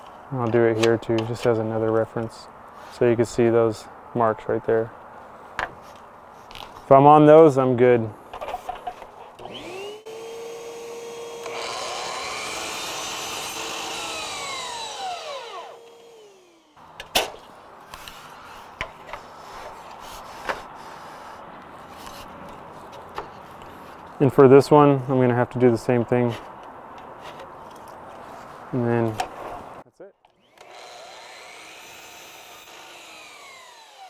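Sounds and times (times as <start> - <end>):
miter saw cutting: 9.4 - 16.8, 30.4 - 34.0.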